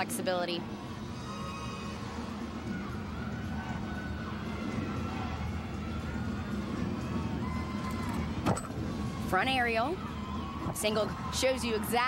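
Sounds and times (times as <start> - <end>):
low crowd murmur: 0.0 - 12.0.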